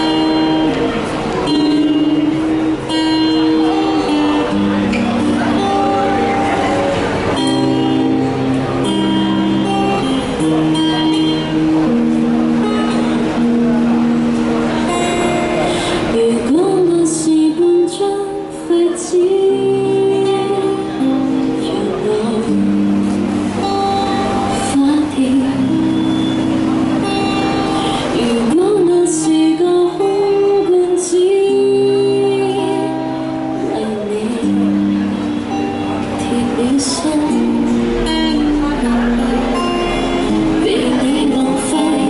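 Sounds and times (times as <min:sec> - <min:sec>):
woman singing into a microphone: 0:00.0 - 0:06.3, 0:14.9 - 0:42.0
acoustic guitar: 0:00.0 - 0:42.0.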